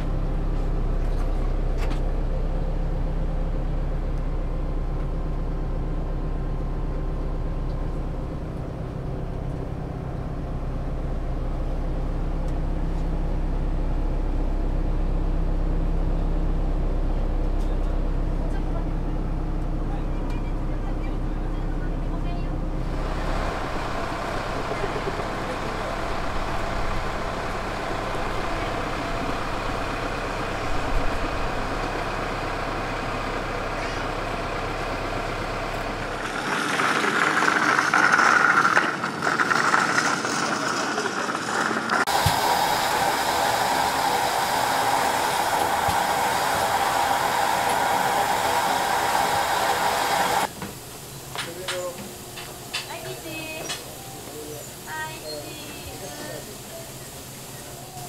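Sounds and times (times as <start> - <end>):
bus engine rumbling: 0.0 - 58.0
steam hissing: 22.8 - 35.4, 36.1 - 58.0.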